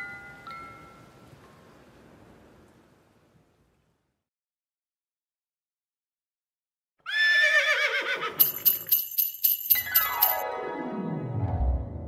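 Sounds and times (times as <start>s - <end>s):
horse whinnying: 7.0s - 8.6s
bells jingling: 8.4s - 10.4s.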